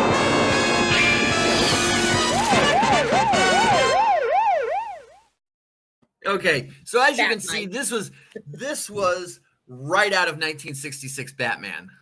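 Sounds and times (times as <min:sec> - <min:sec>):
cartoon theme music: 0:00.0 - 0:04.3
warbling siren: 0:00.0 - 0:05.4.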